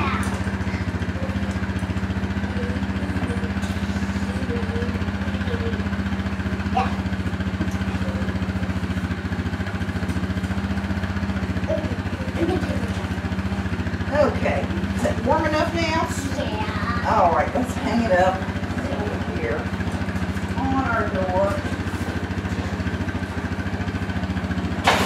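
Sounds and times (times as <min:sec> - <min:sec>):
motor humming with fast pulse: 0:00.0 - 0:25.0.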